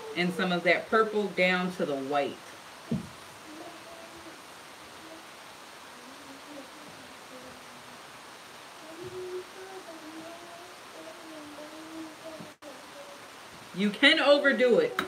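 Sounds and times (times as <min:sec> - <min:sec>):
person humming: 0:00.0 - 0:00.4, 0:03.4 - 0:13.4
soft knock: 0:02.9 - 0:03.2.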